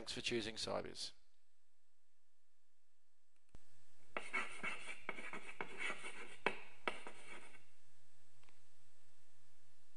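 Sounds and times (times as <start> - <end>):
chalk taps: 4.2 - 7.6
chalk scratching on blackboard: 4.2 - 7.7.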